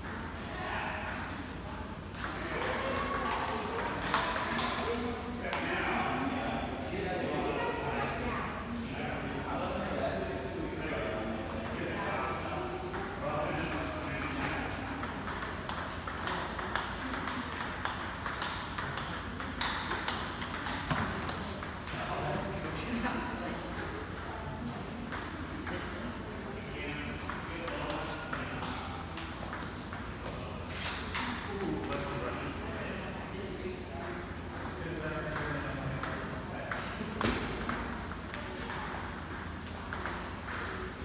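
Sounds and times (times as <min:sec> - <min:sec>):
table tennis ball clicking: 0:15.0 - 0:21.7.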